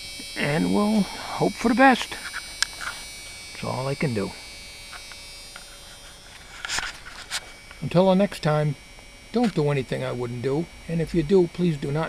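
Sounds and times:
faint electrical buzz: 0:00.0 - 0:12.0
camera handling rustle: 0:02.2 - 0:03.4, 0:04.9 - 0:07.6.

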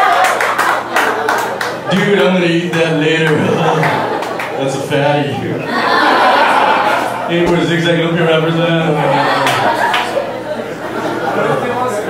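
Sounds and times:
audience applause: 0:00.0 - 0:04.6, 0:09.0 - 0:10.3
crowd voices: 0:00.0 - 0:12.0.

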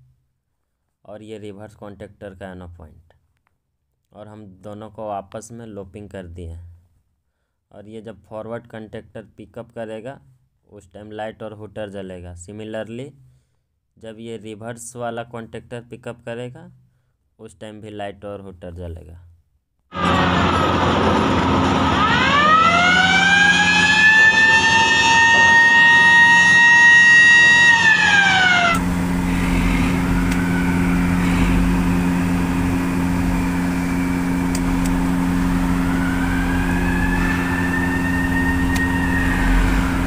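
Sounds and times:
electric hooter wailing: 0:20.0 - 0:40.0
steady low hum: 0:20.0 - 0:40.0.

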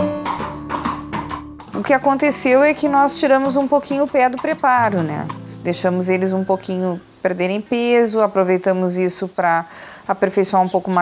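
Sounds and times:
plucked acoustic guitar: 0:00.0 - 0:07.3
person speaking: 0:01.8 - 0:09.3.

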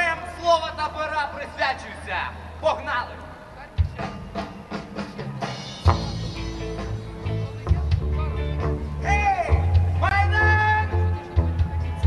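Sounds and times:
drum kit steady beat: 0:03.7 - 0:12.0
rock band playing: 0:03.8 - 0:12.0
loud accented drum hit: 0:05.7 - 0:06.7.

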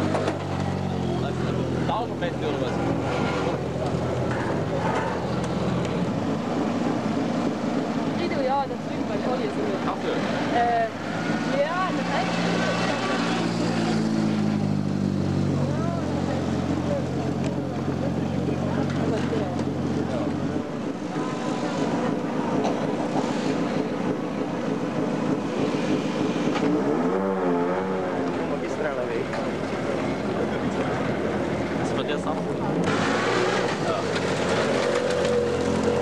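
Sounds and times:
crowd chatter: 0:00.0 - 0:36.0
rally car engine low revs: 0:10.2 - 0:36.0.

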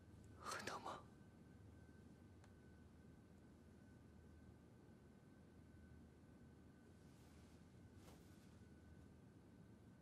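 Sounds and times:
person whispering: 0:00.4 - 0:01.1.

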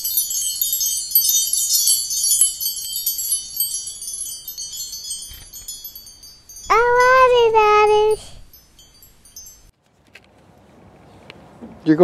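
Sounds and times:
tinkling wind chimes: 0:00.0 - 0:09.7.

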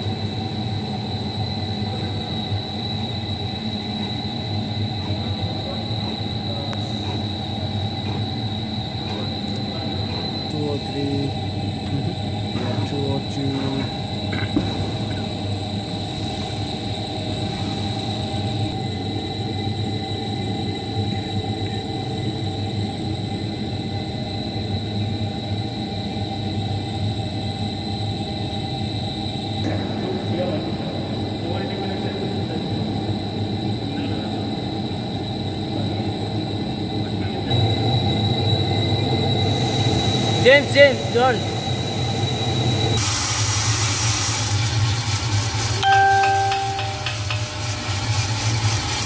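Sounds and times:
coffee roaster mechanical hum: 0:00.0 - 0:49.0
constant high whine: 0:00.0 - 0:49.0.

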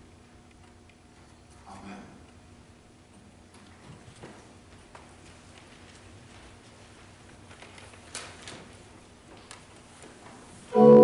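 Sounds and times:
papers rustling: 0:05.1 - 0:10.3.

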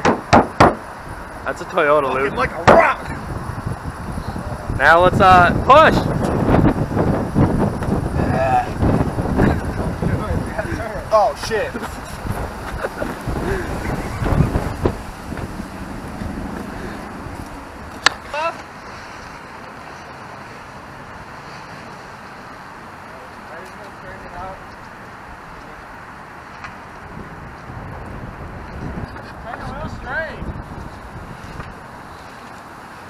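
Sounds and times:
distant traffic: 0:00.0 - 0:33.0
wind: 0:00.0 - 0:33.0.

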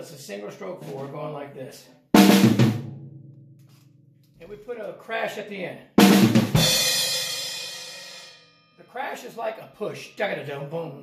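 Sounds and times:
drum fill played with sticks: 0:02.2 - 0:03.8, 0:06.0 - 0:08.5.

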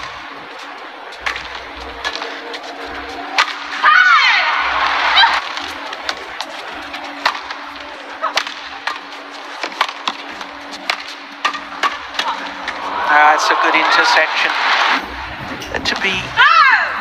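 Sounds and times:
arena ambience hum: 0:00.0 - 0:17.0.

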